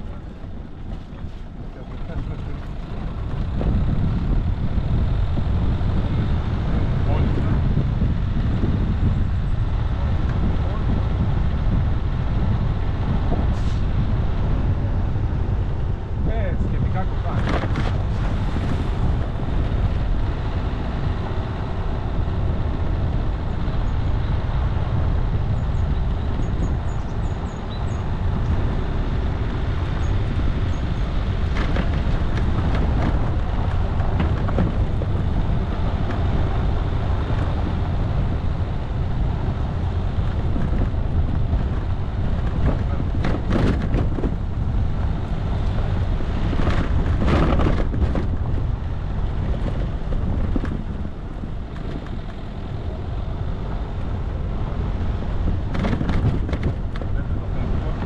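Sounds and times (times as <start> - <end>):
vehicle engine and tyres on gravel: 0.0 - 58.0
clatters and knocks from bumps: 17.3 - 20.0, 29.4 - 36.3, 40.5 - 48.7, 49.3 - 51.1, 55.4 - 57.3.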